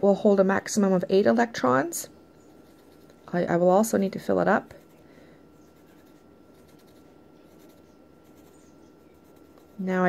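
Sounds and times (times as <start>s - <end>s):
pencil scratching on paper: 2.4s - 3.2s, 5.6s - 10.0s.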